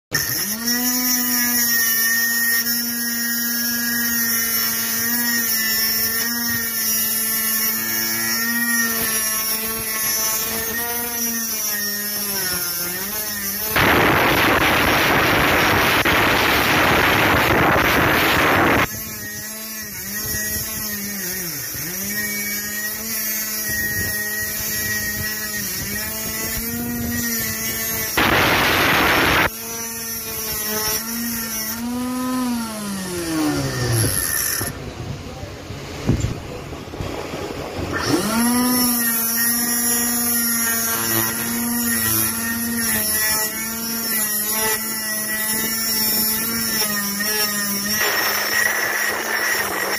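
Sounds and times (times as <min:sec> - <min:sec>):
steel grinding on disc: 0:00.1 - 0:35.0, 0:37.0 - 0:49.9
motor whining: 0:00.1 - 0:49.9.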